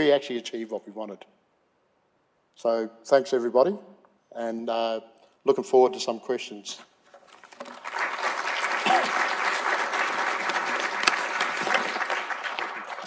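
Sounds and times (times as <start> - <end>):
audience clapping: 7.4 - 13.0.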